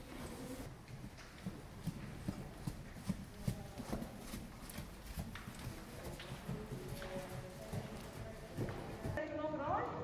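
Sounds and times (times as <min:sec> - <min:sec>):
horse hoofbeats on sand: 0:00.6 - 0:09.2.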